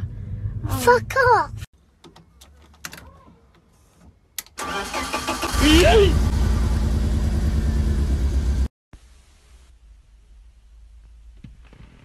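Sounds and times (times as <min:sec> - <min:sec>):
car engine rumbling: 0:00.0 - 0:02.5, 0:04.6 - 0:08.7
car starter cranking: 0:04.4 - 0:06.7.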